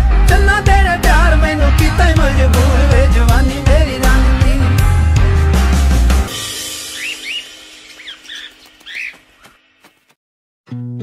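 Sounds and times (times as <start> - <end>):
bird chirps: 6.8 - 10.0.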